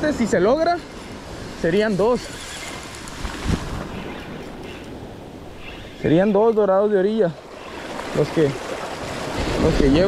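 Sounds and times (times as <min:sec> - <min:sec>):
ocean surf washing: 0:00.0 - 0:10.0
wind on microphone: 0:01.1 - 0:06.4, 0:07.7 - 0:10.0.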